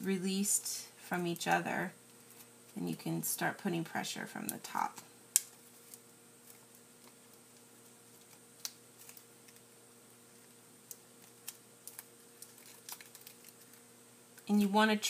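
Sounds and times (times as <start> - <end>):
faint steady hum: 0.0 - 15.0
paper clicks and crinkles: 5.4 - 13.8.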